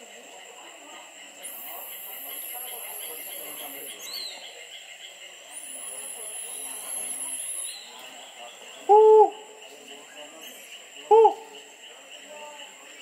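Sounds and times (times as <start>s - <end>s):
faint voices murmuring: 0.0s - 13.0s
high-pitched insect call: 0.0s - 13.0s
insects buzzing chorus: 0.0s - 13.0s.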